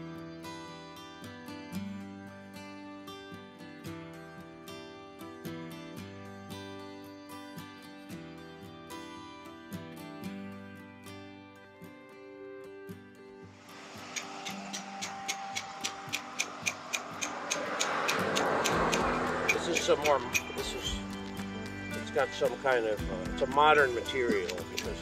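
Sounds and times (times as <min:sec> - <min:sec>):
acoustic guitar music: 0:00.0 - 0:25.0.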